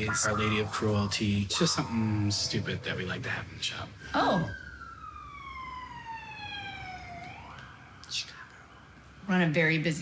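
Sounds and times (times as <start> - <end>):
emergency siren wailing: 0.0 - 9.4.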